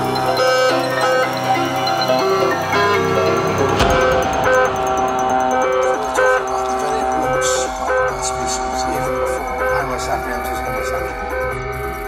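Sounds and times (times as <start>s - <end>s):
trance synth melody: 0.0s - 12.0s.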